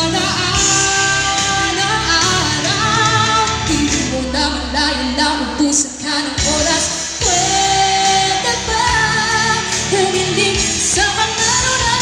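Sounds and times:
band backing music: 0.0 - 12.0
woman singing into a microphone: 0.0 - 12.0.

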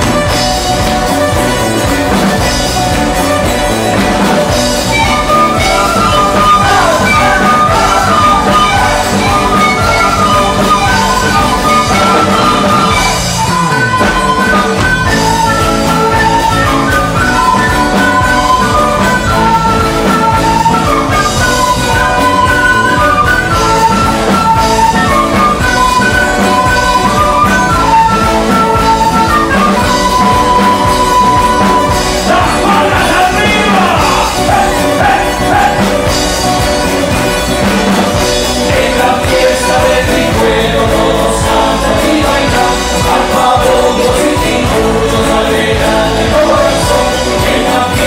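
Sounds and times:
folk band playing dance tune: 0.0 - 48.0
steady drum beat: 0.0 - 48.0.

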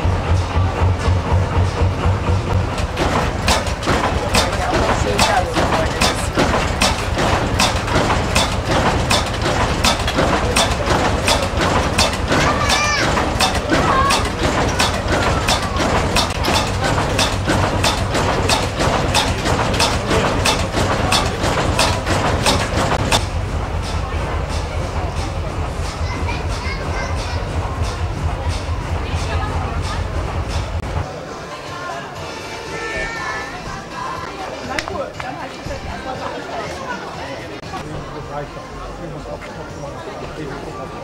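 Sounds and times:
diesel engine knocking: 0.0 - 31.1.

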